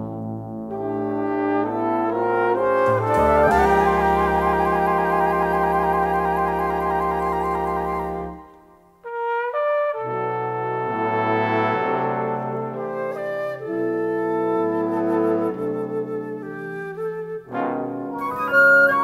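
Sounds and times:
jazz horn section playing ballad: 0:00.0 - 0:16.7, 0:17.5 - 0:19.0.

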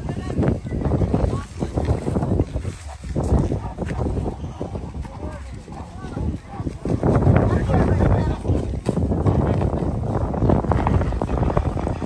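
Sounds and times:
indistinct talking: 0:00.0 - 0:12.0
wind rumble on microphone: 0:00.0 - 0:12.0.

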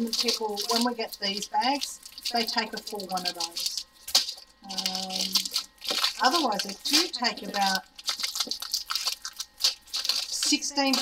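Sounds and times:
plastic bag crinkling: 0:00.0 - 0:11.0.

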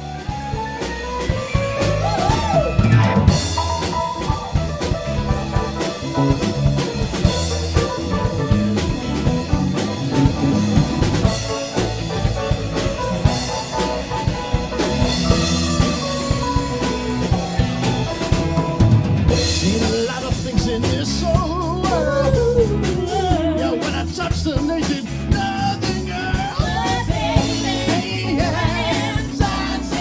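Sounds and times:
loud drum kit beat: 0:00.0 - 0:30.0
rock band playing instrumental: 0:00.0 - 0:30.0.

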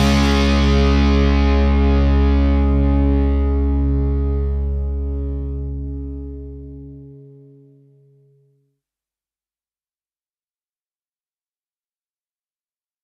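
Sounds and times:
distorted electric guitar chord ringing: 0:00.0 - 0:08.6.

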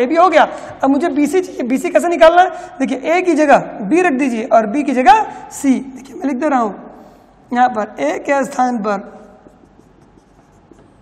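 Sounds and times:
marker pen writing on whiteboard: 0:08.4 - 0:11.0.

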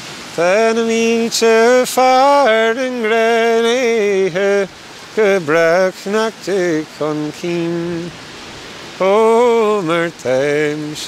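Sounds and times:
steady hiss: 0:00.0 - 0:11.0
man singing unaccompanied: 0:00.3 - 0:11.0.

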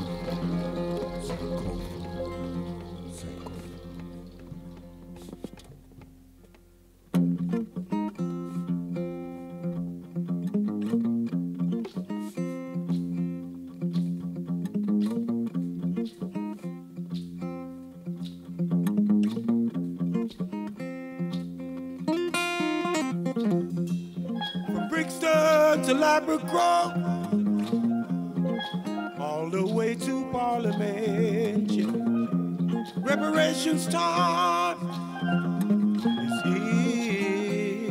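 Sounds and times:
bass guitar: 0:00.0 - 0:20.6, 0:26.6 - 0:37.9
plucked guitar riff: 0:00.0 - 0:37.9.

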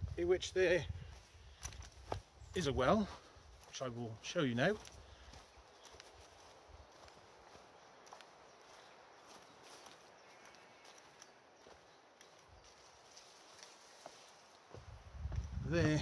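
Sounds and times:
footsteps on grassy path: 0:00.0 - 0:16.0.

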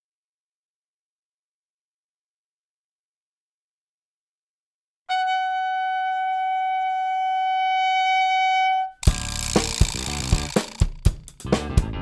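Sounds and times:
trumpet long high note: 0:05.1 - 0:09.1.

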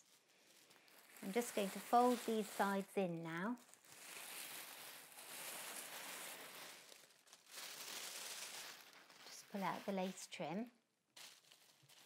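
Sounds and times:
tissue paper rustling: 0:00.0 - 0:12.0.

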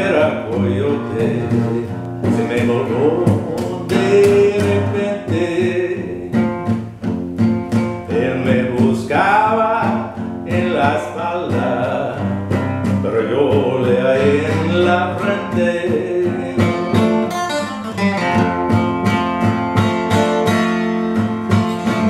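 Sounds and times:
man singing: 0:00.0 - 0:06.8, 0:08.0 - 0:17.7, 0:21.5 - 0:22.0
acoustic guitar strumming: 0:00.0 - 0:22.0.

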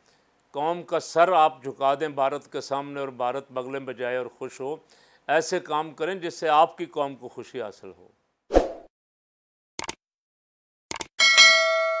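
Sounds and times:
notification bell chime: 0:11.2 - 0:12.0.

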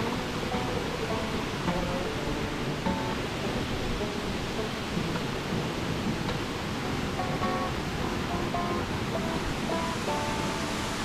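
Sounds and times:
faint background music: 0:00.0 - 0:11.0
waterfall rushing into pool: 0:00.0 - 0:11.0.

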